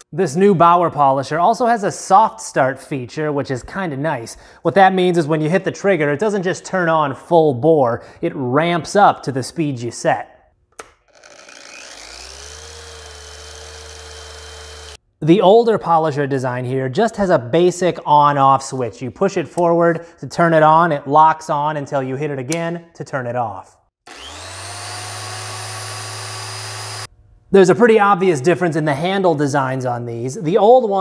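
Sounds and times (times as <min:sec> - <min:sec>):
polisher motor whine: 0:11.2 - 0:15.0, 0:24.1 - 0:27.1.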